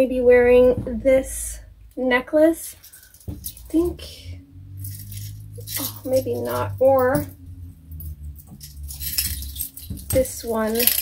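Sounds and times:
metal chain jingling: 2.6 - 11.0.

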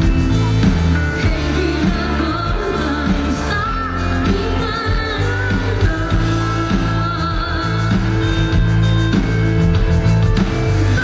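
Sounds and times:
person singing: 0.0 - 8.6
live rock band: 0.0 - 11.0.

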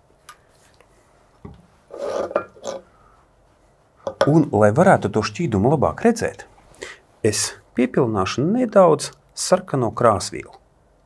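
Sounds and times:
dish scraping on metal: 1.9 - 2.8.

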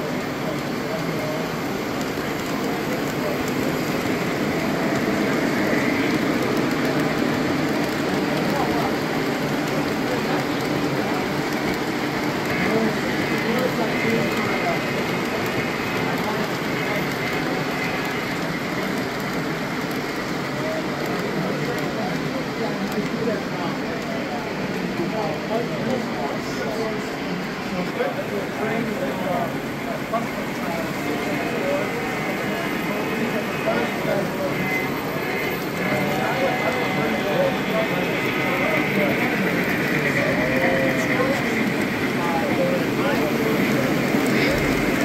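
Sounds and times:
model train wheels on track: 0.0 - 45.0
people chattering: 0.0 - 45.0.

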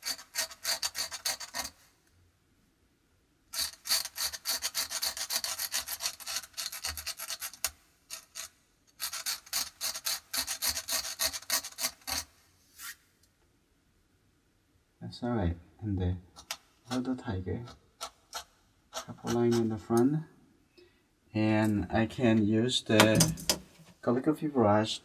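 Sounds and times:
knife blade scratching paper: 0.0 - 1.8, 3.5 - 13.0, 18.0 - 19.8.

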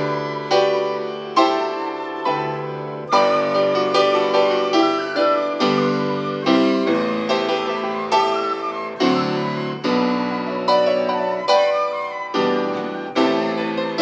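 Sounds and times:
piano playing gentle chords: 0.0 - 14.0.

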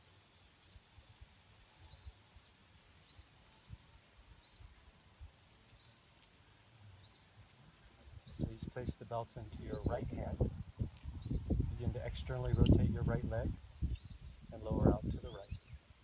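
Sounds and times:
bird chirping: 0.5 - 10.2, 10.8 - 15.9.

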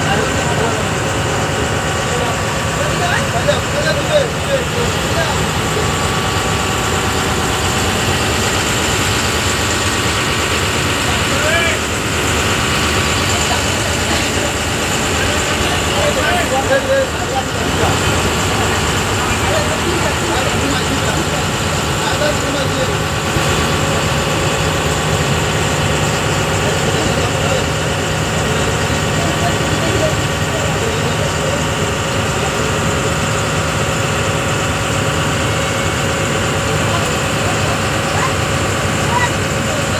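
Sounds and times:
ferry engine drone: 0.0 - 39.9
passengers talking: 0.0 - 39.9.

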